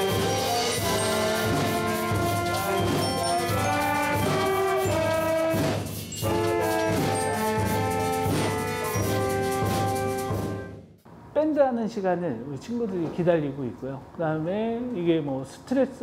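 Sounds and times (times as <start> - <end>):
wind band playing slow tune: 0.0 - 10.8.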